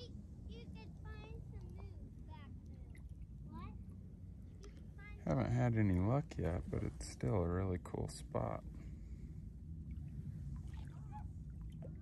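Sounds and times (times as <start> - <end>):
low rumble: 4.1 - 12.0.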